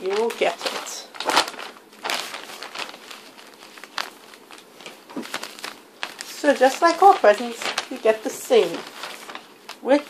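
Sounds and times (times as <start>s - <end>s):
wrapping paper crinkling: 0.0s - 10.0s.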